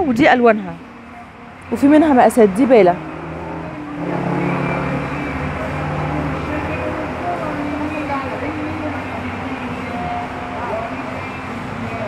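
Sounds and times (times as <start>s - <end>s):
vehicle engine running: 0.8s - 12.0s.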